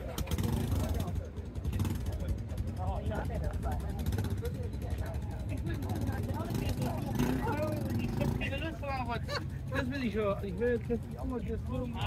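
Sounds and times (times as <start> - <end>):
motorcycle engine running: 0.0 - 12.0
people talking: 0.0 - 12.0.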